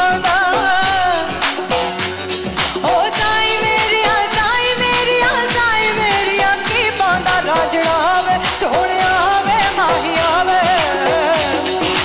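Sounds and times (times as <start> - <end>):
woman singing: 0.0 - 1.8, 2.8 - 12.0
band accompaniment with drum beat: 0.0 - 12.0.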